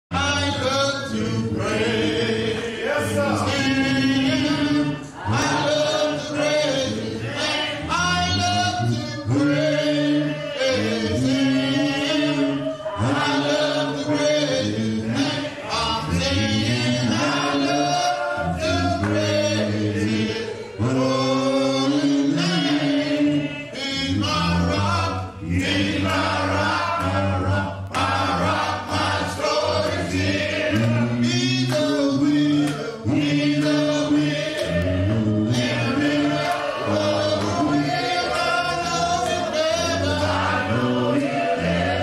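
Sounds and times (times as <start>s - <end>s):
group singing a cappella: 0.1s - 42.0s.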